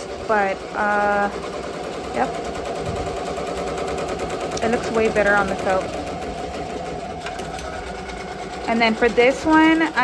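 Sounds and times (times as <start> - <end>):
embroidery machine clattering: 0.0 - 10.0.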